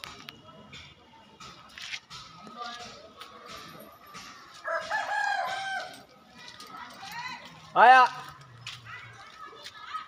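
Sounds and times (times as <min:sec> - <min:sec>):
rooster crowing: 0:04.6 - 0:06.0.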